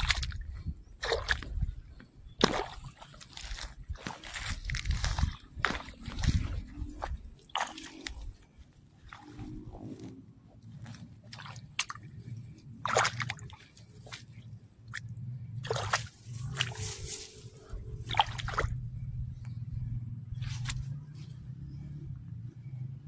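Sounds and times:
water sloshing and splashing: 0.0s - 19.0s, 20.4s - 21.0s
steady low rumble: 0.0s - 23.0s.

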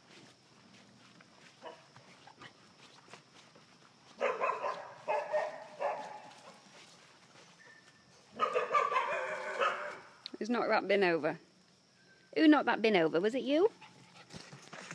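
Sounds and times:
puppies barking and yapping: 4.1s - 10.1s.

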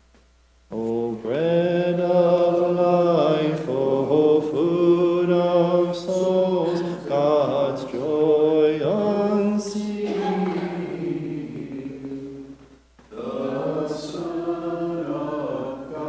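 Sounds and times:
unaccompanied liturgical chant: 0.7s - 16.0s.

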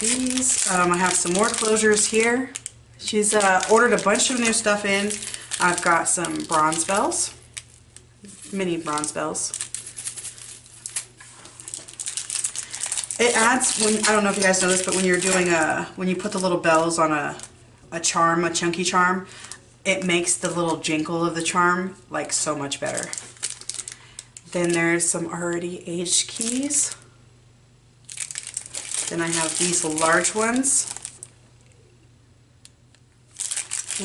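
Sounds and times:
plastic bags crinkling: 0.0s - 17.5s, 22.7s - 25.2s, 28.0s - 31.4s, 33.3s - 34.0s.

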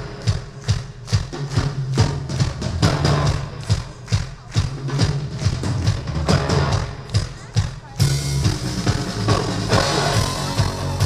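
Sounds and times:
drum beat: 0.0s - 11.0s
sustained bass line: 8.0s - 11.0s.

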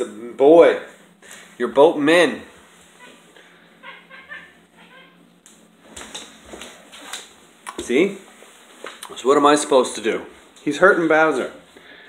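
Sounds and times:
cat crying: 3.8s - 5.2s.

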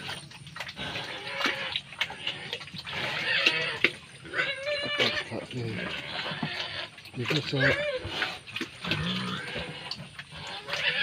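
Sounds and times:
pig grunting: 0.0s - 11.0s.

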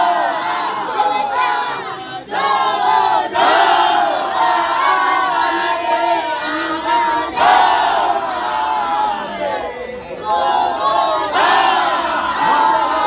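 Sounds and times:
men chanting together: 0.0s - 13.0s.

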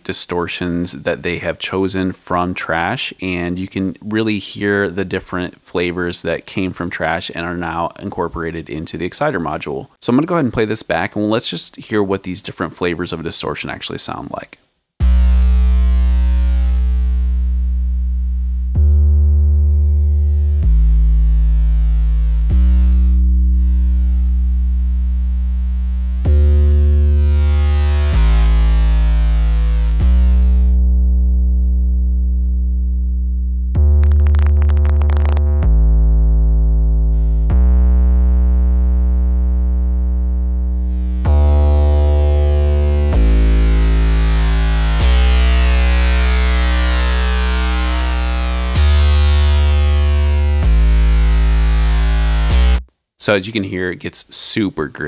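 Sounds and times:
distorted sub bass synth: 15.0s - 52.9s.

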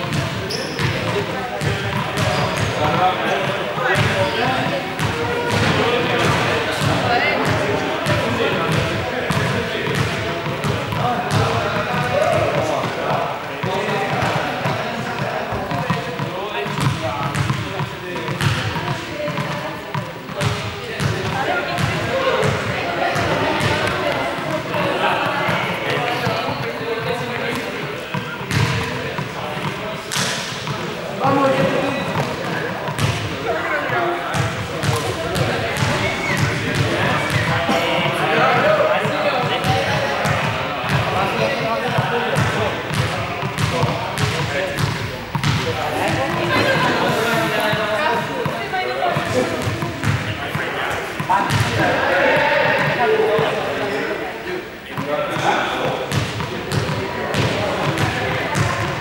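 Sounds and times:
people talking and calling out: 0.0s - 59.0s.

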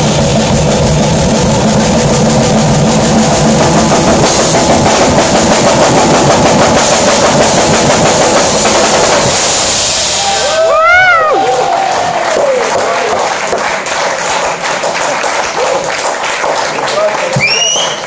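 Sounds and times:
cymbals ringing: 0.0s - 10.7s
drum kits playing: 0.0s - 13.7s.

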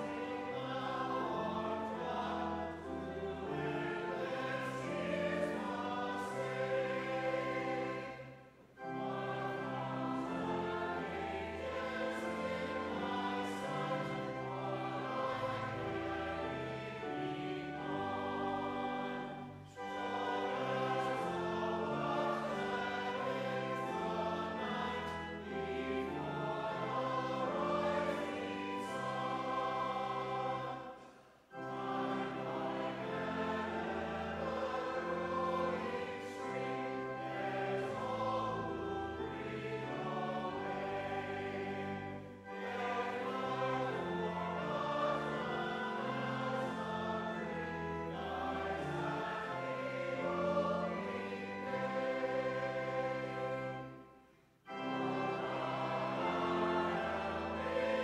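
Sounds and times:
church choir singing: 0.0s - 58.0s.

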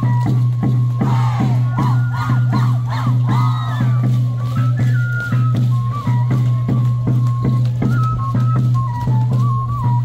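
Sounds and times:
steady drum beat: 0.0s - 4.5s
folk dance music: 0.0s - 10.0s
voices shouting and whooping: 1.0s - 4.3s.

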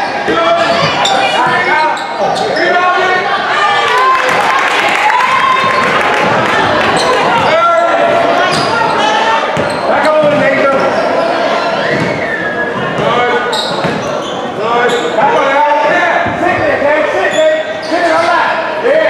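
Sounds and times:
people shouting: 0.0s - 9.6s
basketball bouncing on court: 9.5s - 10.8s, 13.8s - 14.1s.

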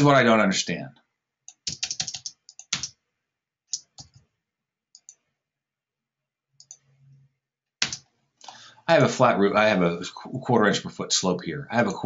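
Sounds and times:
mouse and keyboard clicks: 3.7s - 4.2s.

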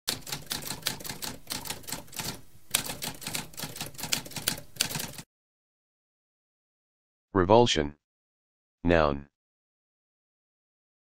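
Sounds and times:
typewriter keys striking: 0.1s - 5.2s.

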